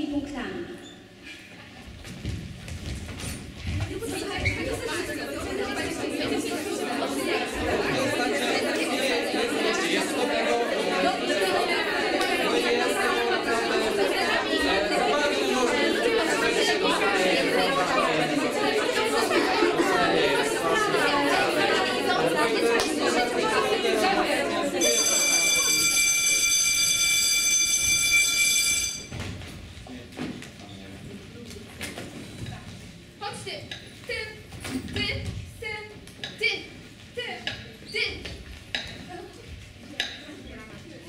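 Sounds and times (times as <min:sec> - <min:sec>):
babble of young voices: 0:03.7 - 0:24.8.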